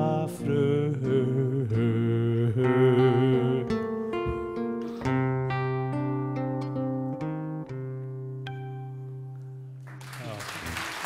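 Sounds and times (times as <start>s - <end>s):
man singing folk ballad: 0.0s - 4.7s
acoustic guitar: 0.0s - 10.0s.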